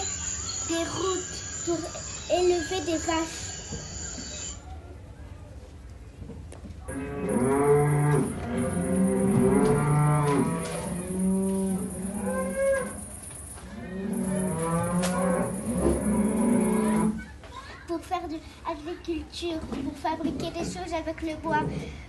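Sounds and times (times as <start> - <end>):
cattle mooing: 6.9 - 13.0, 13.7 - 17.2.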